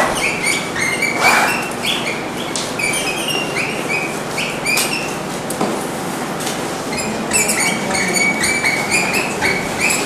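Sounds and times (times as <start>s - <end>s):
marker squeaking on whiteboard: 0.0s - 5.2s, 6.9s - 10.0s.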